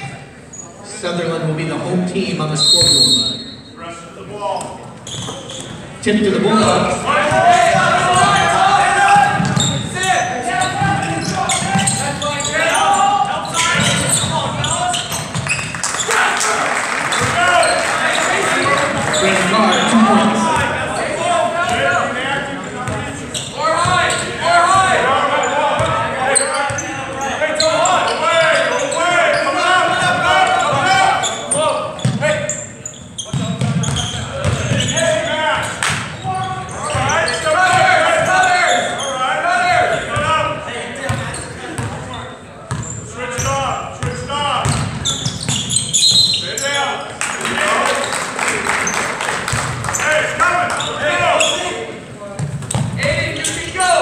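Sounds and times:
voices talking and calling out: 0.0 - 49.0
basketball bouncing on wooden floor: 33.3 - 34.7.

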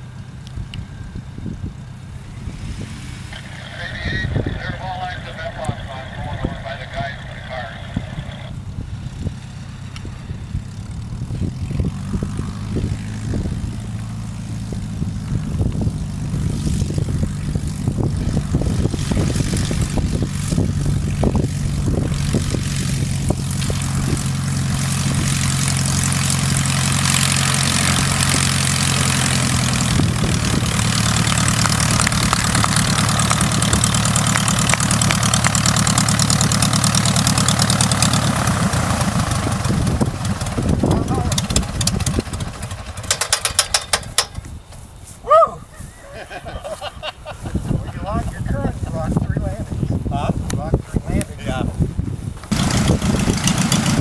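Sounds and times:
light plane engine and propeller: 0.0 - 54.0.

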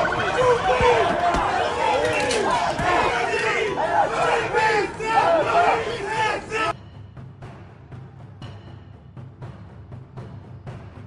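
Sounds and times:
crowd shouting: 0.0 - 6.8.

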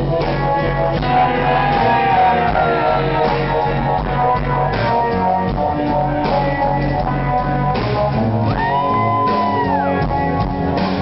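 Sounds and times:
drums: 0.0 - 11.0.

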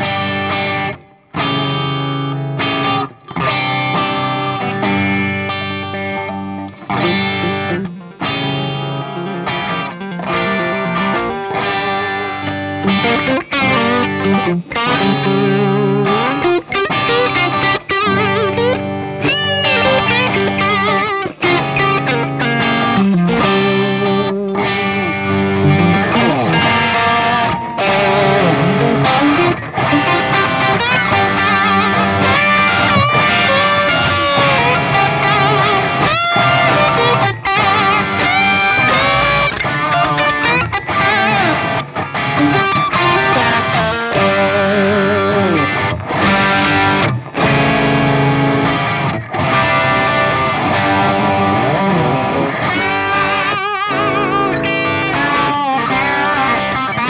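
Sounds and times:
electric guitars jamming: 0.0 - 57.0.

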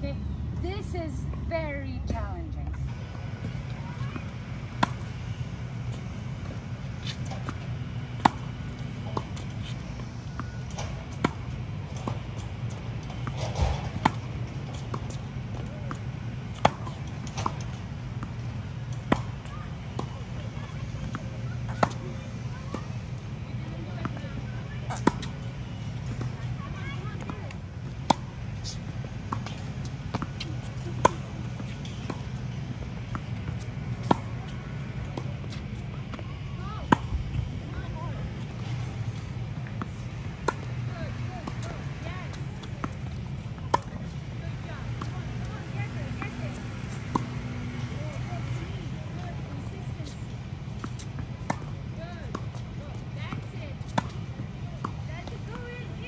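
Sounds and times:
steady low hum: 0.0 - 54.8
tennis ball bouncing: 2.1 - 56.0
tennis ball hit by racket: 3.1 - 52.7, 53.3 - 56.0.

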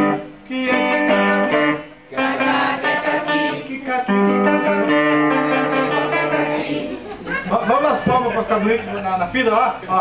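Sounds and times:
man singing: 0.0 - 6.6
guitar strummed: 0.0 - 6.9.

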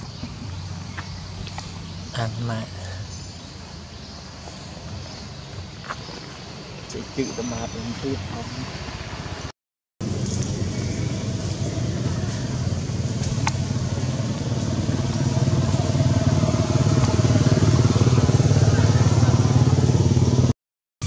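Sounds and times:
vehicle engine running: 10.0 - 20.5.

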